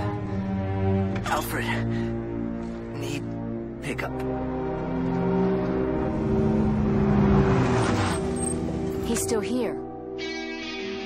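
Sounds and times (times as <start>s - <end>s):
car engine passing by: 5.9s - 9.1s.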